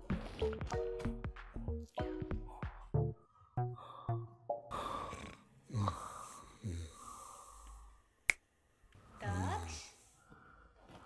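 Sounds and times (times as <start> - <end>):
finger snap: 7.6 - 8.5.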